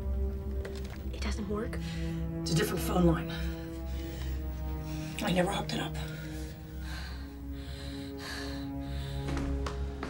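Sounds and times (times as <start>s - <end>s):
tense film score: 0.0s - 10.0s.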